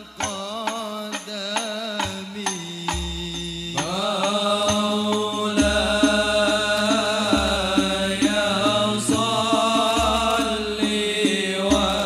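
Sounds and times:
frame drums: 0.0s - 12.0s
person chanting: 0.0s - 12.0s.

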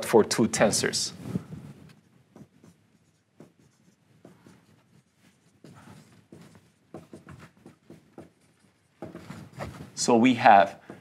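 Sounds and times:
marker writing on whiteboard: 1.8s - 11.0s.

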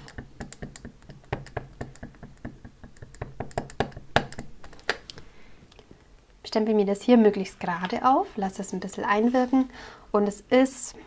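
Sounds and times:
stamp block tapping ink pad: 0.0s - 4.6s.

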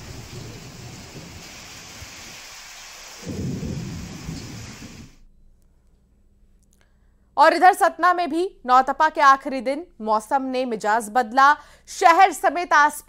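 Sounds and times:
gusty storm wind: 0.0s - 2.5s, 3.2s - 5.2s
heavy rain falling: 0.0s - 5.2s
deep rumble: 3.3s - 5.1s.

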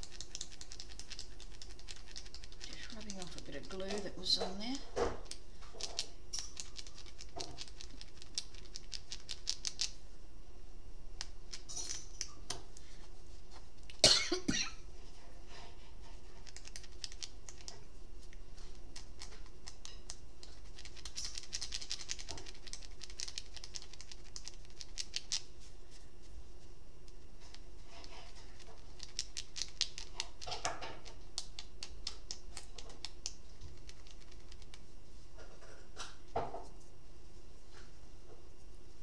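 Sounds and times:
rapid clicking: 0.0s - 4.1s
person coughing: 14.0s - 14.8s.

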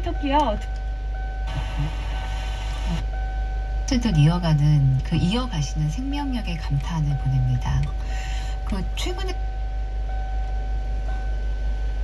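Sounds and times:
faint steady whine: 0.0s - 12.0s
steady low hum: 0.0s - 12.0s
radio speech: 1.5s - 3.1s, 3.9s - 7.9s
radio static hiss: 1.5s - 3.2s.

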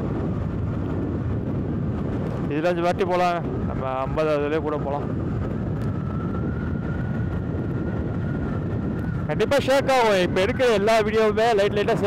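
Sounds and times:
motorcycle engine and road rumble: 0.0s - 12.0s.

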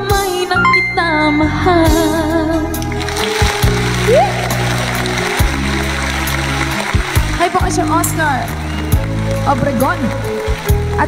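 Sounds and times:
instrumental backing track: 0.4s - 4.0s.

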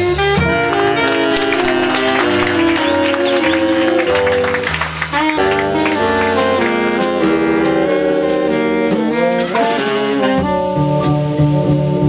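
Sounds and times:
small jazz band playing: 0.0s - 12.0s.

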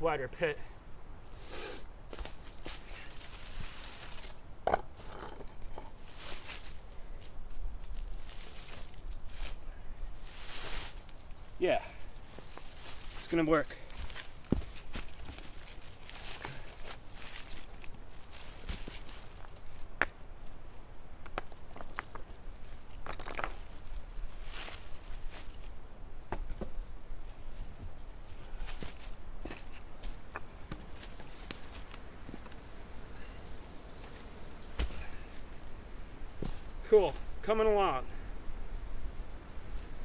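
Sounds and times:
dry leaves rustling: 2.1s - 4.4s, 5.0s - 19.9s, 21.5s - 25.9s, 26.6s - 37.4s, 38.9s - 40.0s
stone knocking on stone: 4.6s - 5.9s.

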